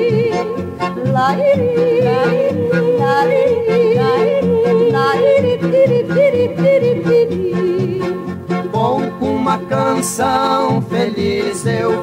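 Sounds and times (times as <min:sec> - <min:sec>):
acoustic accompaniment with bass beat: 0:00.0 - 0:12.0
men yodeling: 0:01.0 - 0:07.3, 0:08.7 - 0:12.0.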